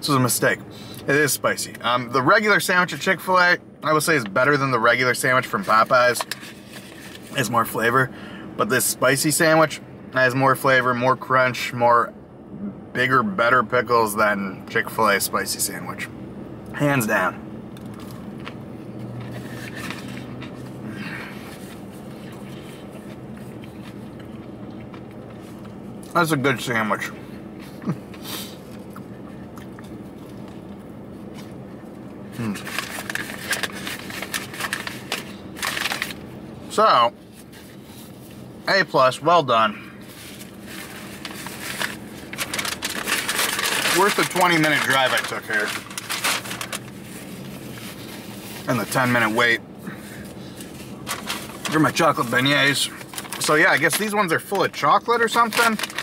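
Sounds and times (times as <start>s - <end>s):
low hum of parked car: 0.0s - 56.0s
chewing crunchy fried food: 21.8s - 26.1s, 27.7s - 36.1s
paper wrapper crumpling: 32.4s - 36.2s, 40.1s - 49.4s, 50.6s - 56.0s.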